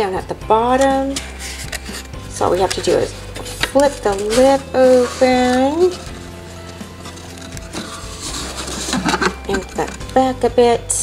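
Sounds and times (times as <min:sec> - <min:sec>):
cardboard scraping and rustling: 0:01.1 - 0:10.0.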